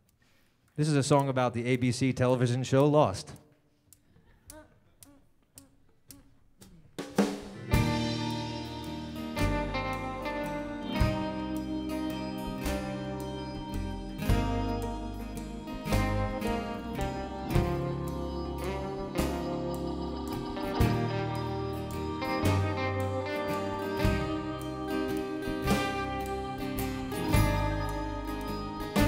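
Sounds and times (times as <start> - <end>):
drum kit: 6.6 - 29.0
acoustic guitar: 7.2 - 29.0
piano: 7.6 - 29.0
upright bass: 7.6 - 29.0.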